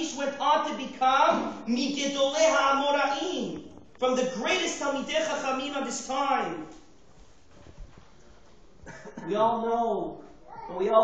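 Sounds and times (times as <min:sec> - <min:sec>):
man speaking: 0:00.0 - 0:06.9, 0:09.2 - 0:11.0.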